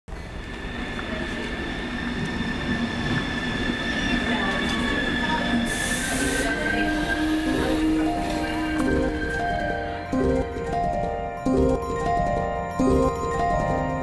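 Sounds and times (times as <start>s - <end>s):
train rumble on rails: 0.1s - 12.4s
high wheel squeal: 0.6s - 9.8s
music: 5.6s - 14.0s.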